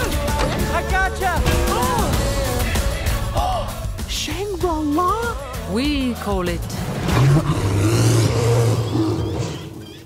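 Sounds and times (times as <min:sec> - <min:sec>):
deep creature roar: 0:07.0 - 0:10.0.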